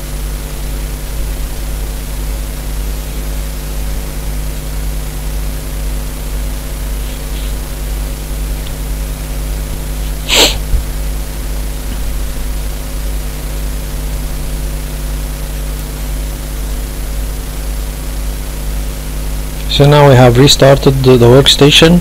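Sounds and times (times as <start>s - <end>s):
low electrical hum: 0.0s - 22.0s
microphone hiss: 0.0s - 22.0s
short breathy burst: 10.0s - 10.8s.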